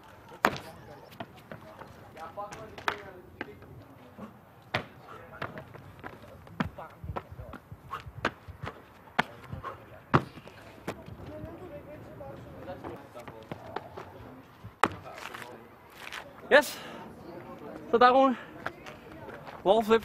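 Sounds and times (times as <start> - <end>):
running shoes striking concrete: 0.4 - 3.9, 4.7 - 11.4
landing thuds: 4.7 - 11.1.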